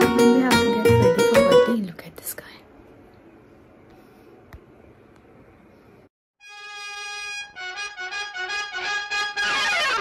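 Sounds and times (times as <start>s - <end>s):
woman whispering: 1.8s - 2.8s.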